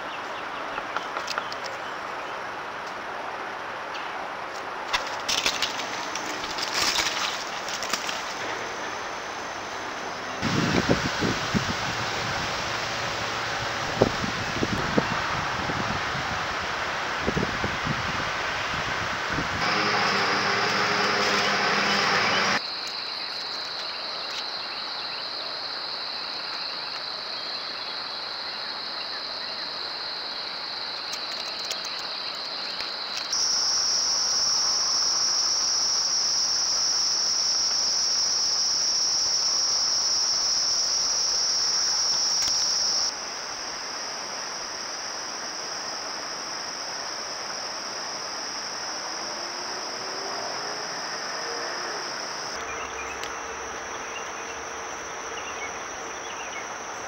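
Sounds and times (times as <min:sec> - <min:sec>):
high-pitched insect drone: 0:05.3 - 0:14.8, 0:19.6 - 0:57.0.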